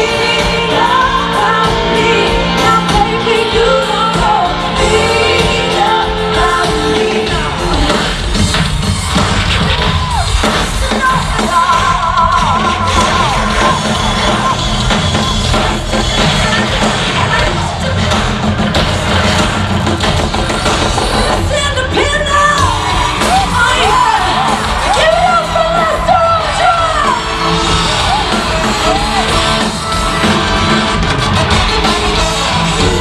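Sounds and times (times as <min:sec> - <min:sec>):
woman singing lead vocal: 0:00.0 - 0:08.2, 0:10.8 - 0:13.0, 0:21.3 - 0:27.4
drum and bass beat: 0:00.0 - 0:33.0
live pop-rock band: 0:00.0 - 0:33.0.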